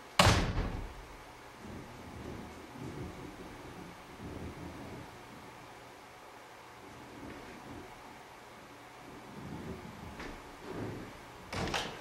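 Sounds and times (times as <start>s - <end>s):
low thumps and rumble: 0.2s - 5.6s.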